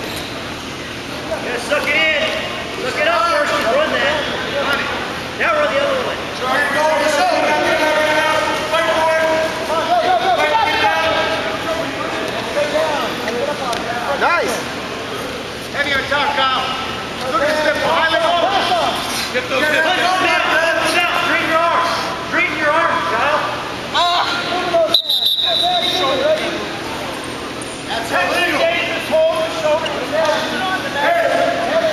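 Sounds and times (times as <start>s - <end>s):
men shouting: 6.4s - 12.8s.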